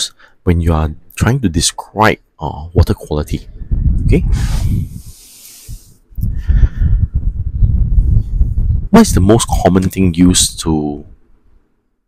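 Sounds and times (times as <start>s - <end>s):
man speaking: 0.0s - 4.6s, 9.0s - 11.1s
breathy exhale into microphone: 4.3s - 7.2s.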